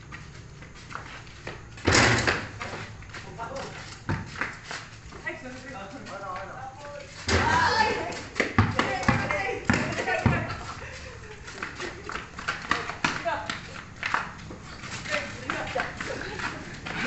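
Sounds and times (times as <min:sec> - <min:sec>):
basketball bouncing on concrete: 0:04.0 - 0:04.6, 0:06.4 - 0:10.6, 0:11.6 - 0:17.0
players shouting: 0:07.3 - 0:10.4.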